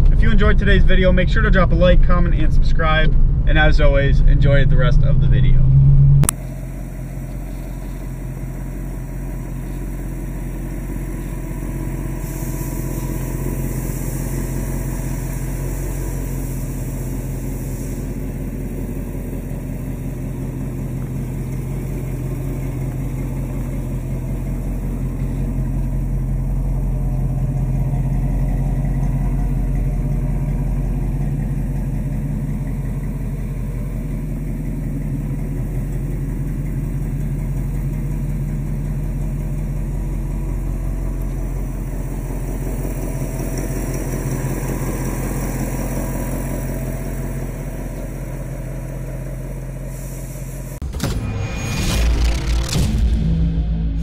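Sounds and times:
car engine idling: 0.0s - 50.9s
hiss: 9.5s - 20.1s, 49.6s - 50.8s.

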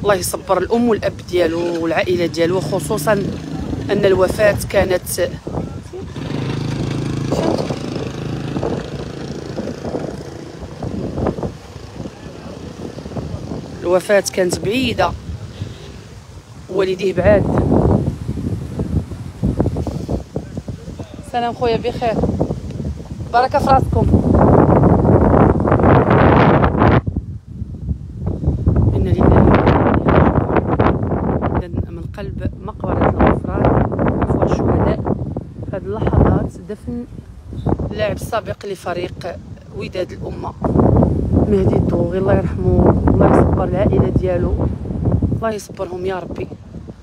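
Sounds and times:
wind buffeting microphone: 0.0s - 47.0s
murmur of voices: 1.4s - 11.0s.

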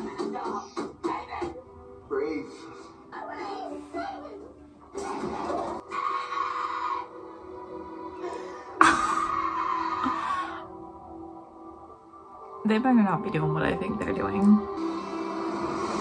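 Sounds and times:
sustained background music: 0.0s - 16.0s.

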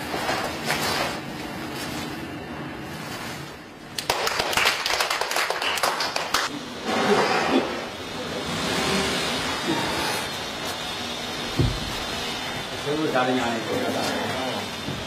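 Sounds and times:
crowd applauding: 4.0s - 6.5s.

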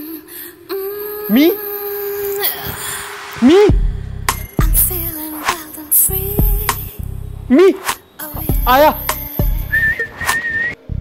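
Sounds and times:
hip-hop beat with deep bass: 3.2s - 7.0s, 7.7s - 10.4s
held whistle note: 9.7s - 10.8s.

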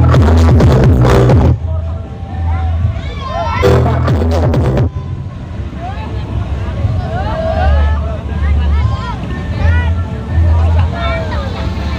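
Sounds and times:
heavy bass pulses from speakers: 0.0s - 3.0s, 3.6s - 5.1s
crowd shouting: 1.5s - 11.8s.

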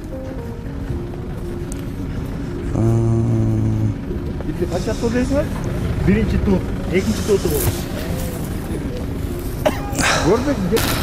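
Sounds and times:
steady low rumble: 0.0s - 11.0s
men's voices: 2.6s - 11.0s.

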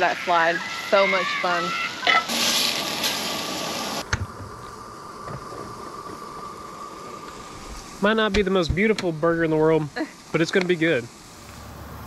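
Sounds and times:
patties and onions sizzling on griddle: 0.0s - 12.0s.

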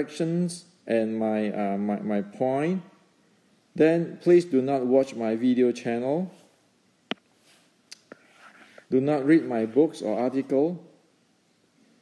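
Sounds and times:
man speaking: 0.0s - 2.9s, 3.8s - 6.5s, 8.9s - 10.9s
faint breath noise: 7.4s - 9.0s
mouth clicks: 7.9s - 8.9s.

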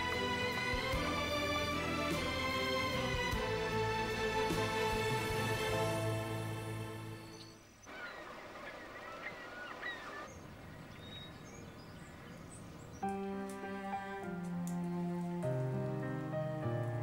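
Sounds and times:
gentle soundtrack music: 0.0s - 7.8s, 12.3s - 17.0s
birds chirping: 0.0s - 17.0s
soft ambient hiss: 0.0s - 17.0s.

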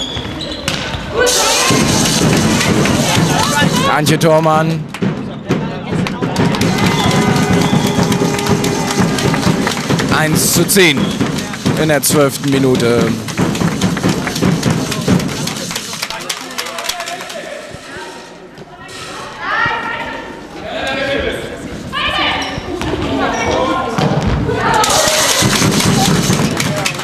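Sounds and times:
ball bouncing on hall floor: 4.9s - 15.9s, 23.9s - 27.0s
running footsteps: 5.9s - 17.5s, 24.8s - 27.0s
players calling out: 6.2s - 15.7s.

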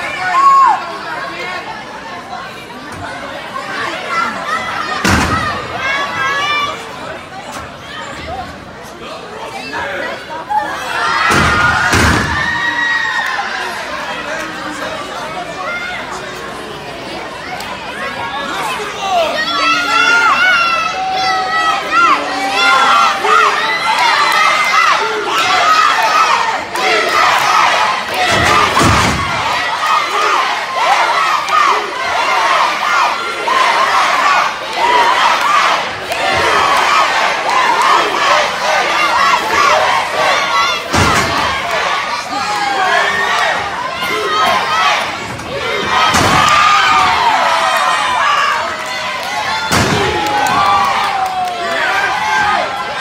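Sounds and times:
crowd shouting and cheering: 0.0s - 53.0s.

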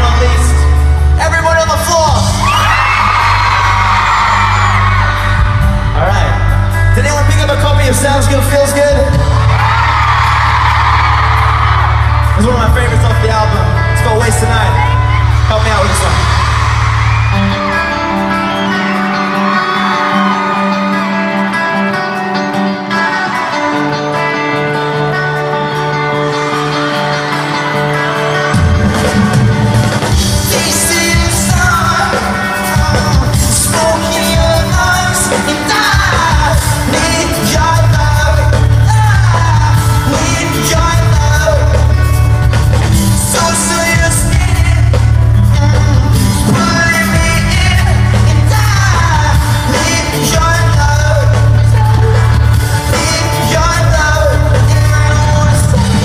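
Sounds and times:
bass: 0.0s - 26.6s, 27.2s - 56.0s
drums: 0.0s - 56.0s
live pop-punk band: 0.0s - 56.0s
lead vocal singing: 30.2s - 42.2s, 43.2s - 56.0s.

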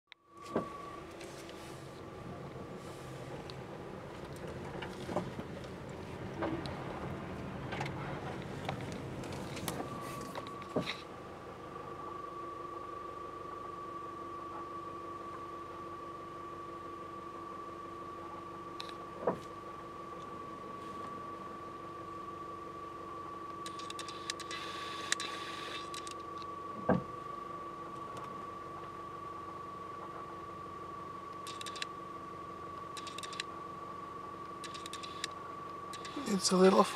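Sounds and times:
constant high whine: 0.1s - 36.9s
machine hum: 0.3s - 36.9s.

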